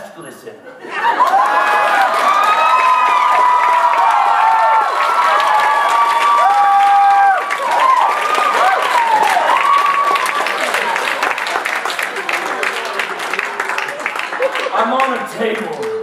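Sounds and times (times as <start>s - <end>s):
audience whooping and cheering: 0.8s - 14.9s
applause: 1.1s - 16.0s.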